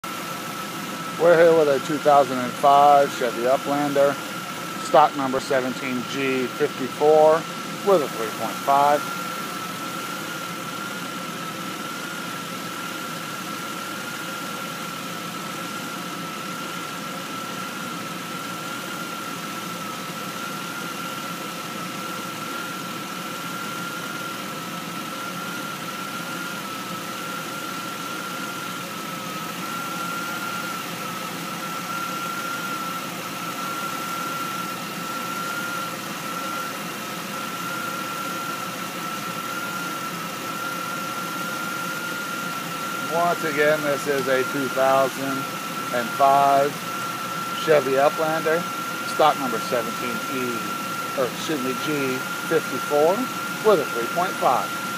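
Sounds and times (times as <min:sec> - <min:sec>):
high-pitched whine: 0:04.8 - 0:09.5, 0:43.0 - 0:47.0, 0:47.6 - 0:54.8.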